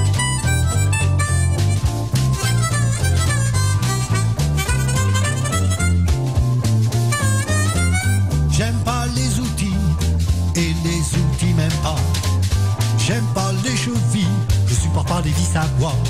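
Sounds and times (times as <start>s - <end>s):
harmonica solo: 0.0s - 8.5s
walking bass line: 0.0s - 16.0s.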